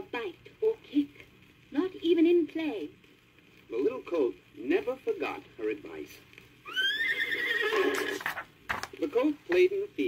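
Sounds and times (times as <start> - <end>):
recorded horse whinny: 6.6 - 8.4.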